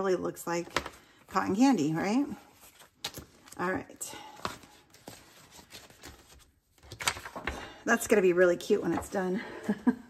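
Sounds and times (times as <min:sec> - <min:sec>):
paper banknotes rustling: 0:02.3 - 0:03.6, 0:04.2 - 0:07.7.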